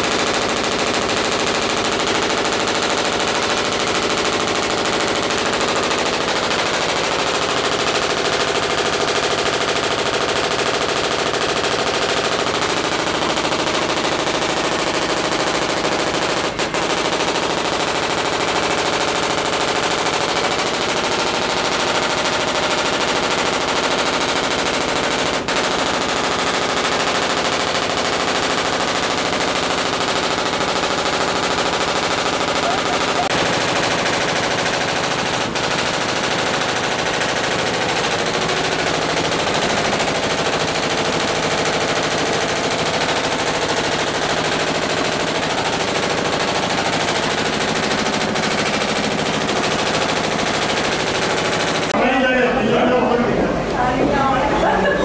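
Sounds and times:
belt-driven machinery running: 0:00.0 - 0:52.0.

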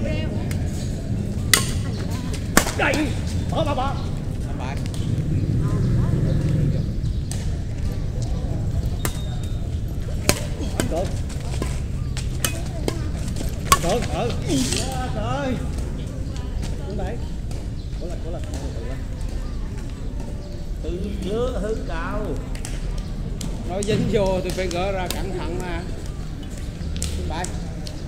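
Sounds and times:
rackets hitting shuttlecock: 0:01.4 - 0:03.3, 0:08.9 - 0:14.9, 0:22.5 - 0:26.1, 0:27.0 - 0:27.9.

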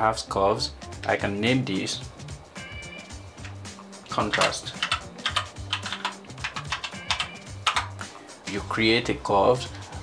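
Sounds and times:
keyboard typing: 0:04.2 - 0:08.0.

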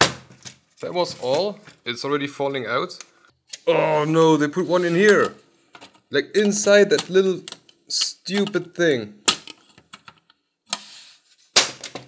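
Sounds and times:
hissy scrape: 0:10.7 - 0:11.5.

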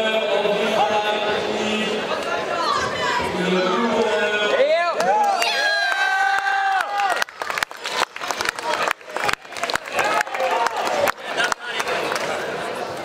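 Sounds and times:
spectators cheering: 0:04.5 - 0:12.9
uneven clapping: 0:05.0 - 0:12.3.

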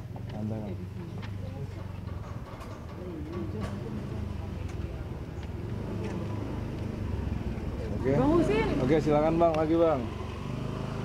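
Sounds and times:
car driving past: 0:03.7 - 0:11.0.

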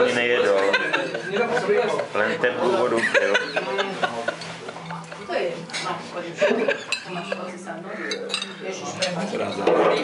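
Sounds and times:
voices around table: 0:00.0 - 0:10.0
cutlery clinking on china dishes: 0:06.6 - 0:10.0.

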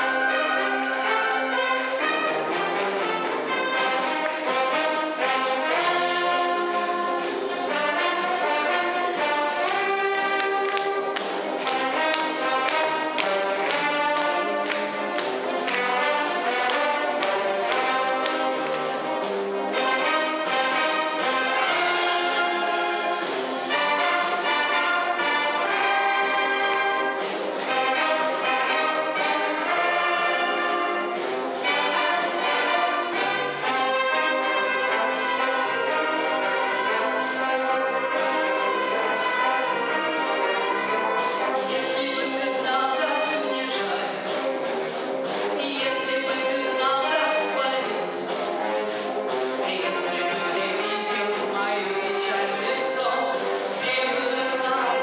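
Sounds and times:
brass band playing: 0:00.0 - 0:55.0.

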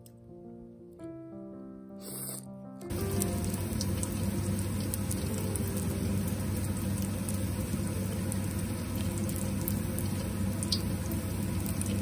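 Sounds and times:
food sizzling in hot oil: 0:02.9 - 0:12.0
low steady hum: 0:02.9 - 0:12.0.

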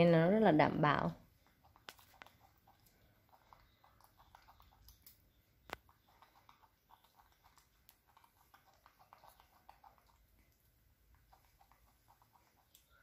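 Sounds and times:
monkey chewing crunchily: 0:01.3 - 0:13.0.

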